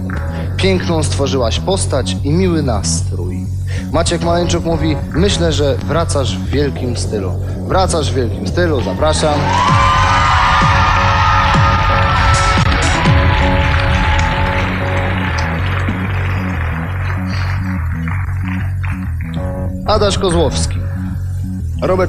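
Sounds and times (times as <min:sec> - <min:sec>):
music with pulsing bass: 0:00.0 - 0:22.0
audience cheering and applause: 0:08.8 - 0:19.4.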